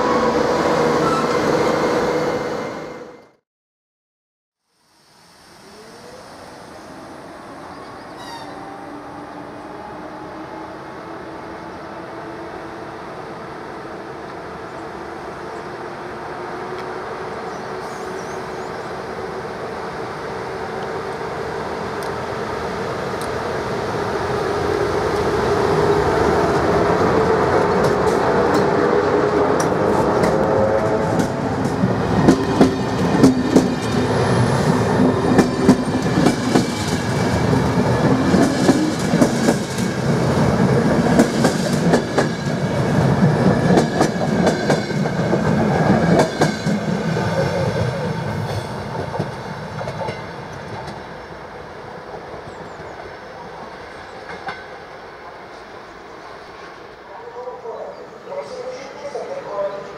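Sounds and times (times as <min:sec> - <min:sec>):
electric locomotive passing: 0:00.0 - 0:03.4, 0:04.9 - 0:59.9.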